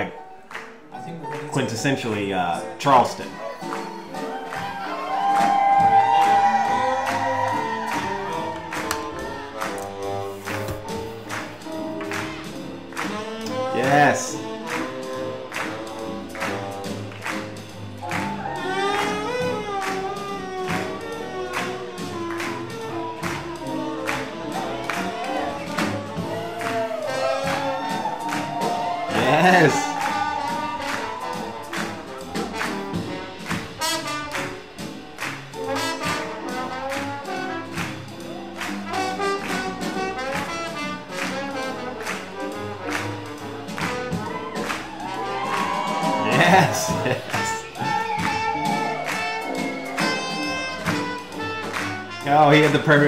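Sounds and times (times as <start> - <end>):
swing jazz band playing: 1.2 - 53.0.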